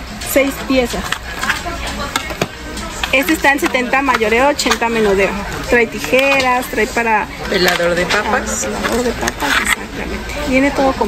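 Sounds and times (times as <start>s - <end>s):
faint voices: 0.0s - 11.0s
knives and plastic tray clicking: 1.0s - 5.0s, 5.9s - 6.7s, 8.8s - 9.8s.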